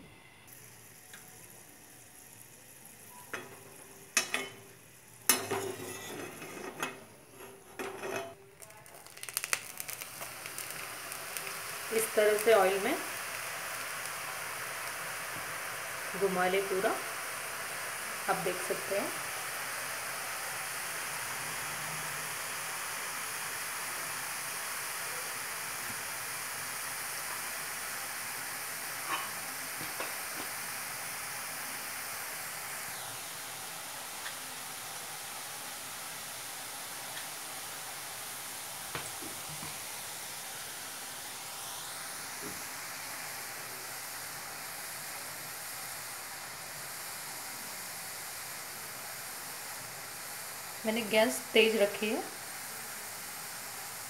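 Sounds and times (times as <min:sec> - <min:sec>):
deep-frying sizzle in hot oil: 0:00.4 - 0:54.0.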